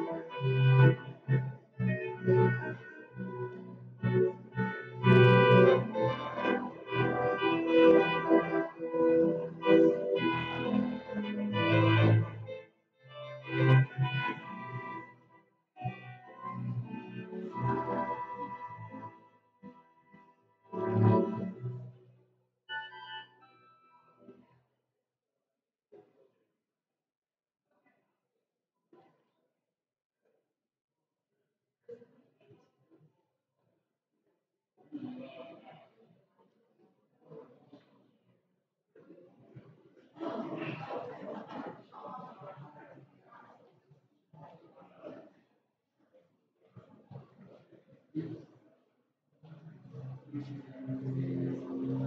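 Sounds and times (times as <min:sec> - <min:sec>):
organ playing held chords: 0:00.0 - 0:15.2, 0:15.8 - 0:21.9, 0:50.4 - 0:52.0.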